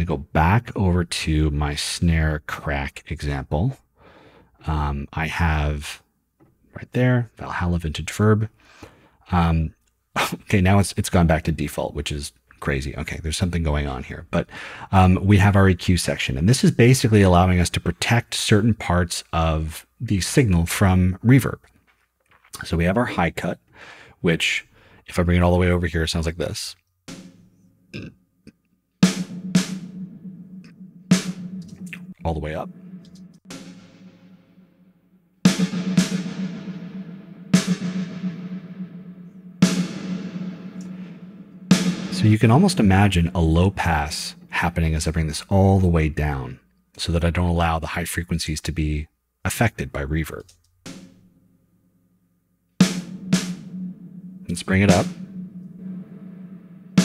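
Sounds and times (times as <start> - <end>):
snare drum hits with reverb: 27.1 - 27.4, 29.0 - 34.3, 35.5 - 38.9, 39.6 - 43.1, 50.9 - 51.2, 52.8 - 57.0.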